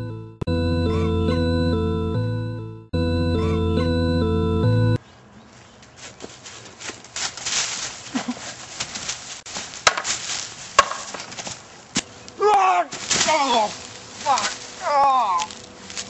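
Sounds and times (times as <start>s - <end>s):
rustling in dry leaves: 5.1s - 16.0s
wooden pole knocks: 10.8s - 11.4s
person crying out: 12.4s - 15.5s.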